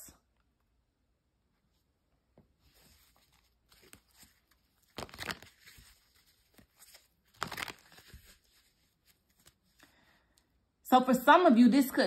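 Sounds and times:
cards rustling: 0:02.7 - 0:09.8.

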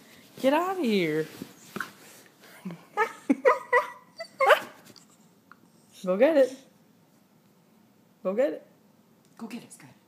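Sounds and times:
dog whine-yelp: 0:03.8 - 0:06.0.

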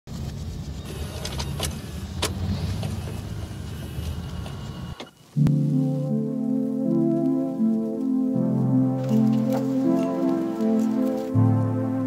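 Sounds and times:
car engine and tyres rumbling: 0:00.1 - 0:05.4, 0:09.0 - 0:12.0.

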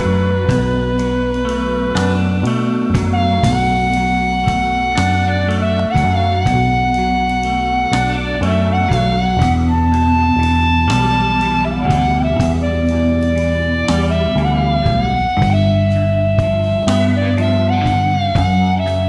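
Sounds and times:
bass guitar: 0:00.0 - 0:19.0
electric guitar sliding notes: 0:00.0 - 0:19.0.

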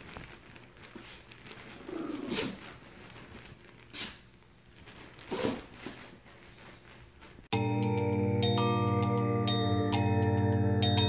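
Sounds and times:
small dogs play-wrestling: 0:00.1 - 0:04.2
dog growly grumble: 0:01.8 - 0:02.5.

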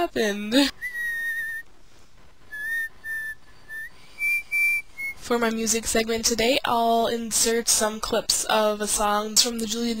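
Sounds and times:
person whistling: 0:00.8 - 0:01.7, 0:02.5 - 0:05.2.

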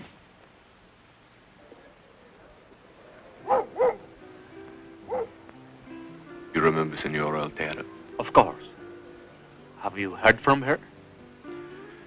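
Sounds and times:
soft background music: 0:03.1 - 0:12.0
dog barking: 0:03.4 - 0:04.1, 0:05.1 - 0:05.4.

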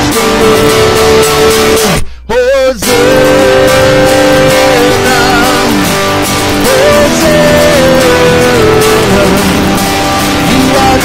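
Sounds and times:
acoustic guitar strumming: 0:00.0 - 0:11.0
man singing: 0:00.0 - 0:11.0.

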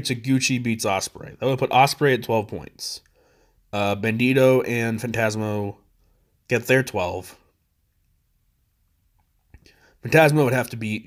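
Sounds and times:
faint breath: 0:03.1 - 0:03.7, 0:06.0 - 0:06.4, 0:09.6 - 0:10.1.

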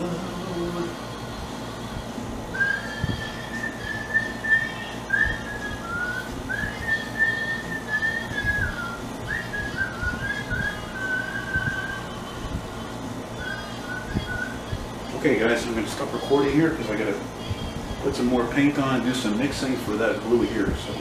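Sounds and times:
man whistling a tune: 0:02.5 - 0:12.3, 0:13.4 - 0:14.7.

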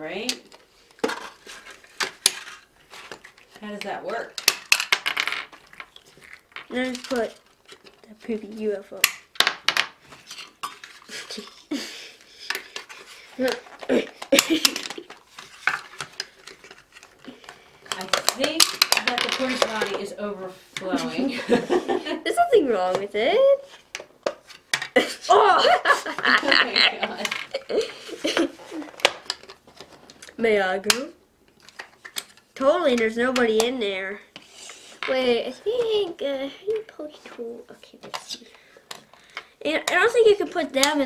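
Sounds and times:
plastic toys clicking and tapping: 0:00.2 - 0:20.1, 0:27.2 - 0:33.8, 0:37.8 - 0:41.0
voices: 0:25.2 - 0:27.4.

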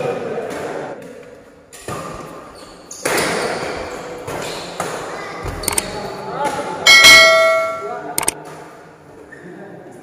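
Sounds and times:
bright bell ding: 0:06.9 - 0:08.0.

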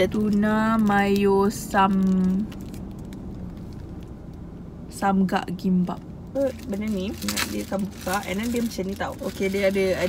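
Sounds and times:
woman speaking: 0:00.0 - 0:02.5, 0:04.9 - 0:10.0
plastic wrapper crinkling: 0:00.0 - 0:04.2, 0:06.4 - 0:10.0
car cabin background: 0:00.0 - 0:10.0.

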